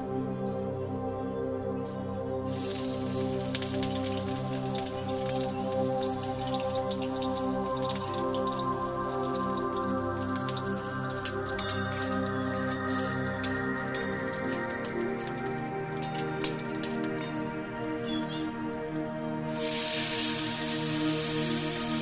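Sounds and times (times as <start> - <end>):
background music with sustained tones: 0.0 - 22.0
hot oil crackling in a wok: 2.5 - 18.0, 19.5 - 22.0.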